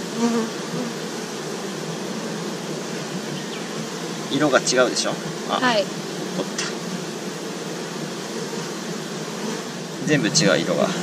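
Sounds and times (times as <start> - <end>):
honeybees buzzing: 0.0 - 11.0.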